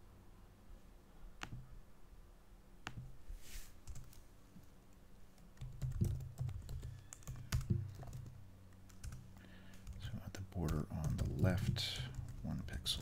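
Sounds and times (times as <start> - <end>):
typing on computer keyboard: 5.6 - 12.5.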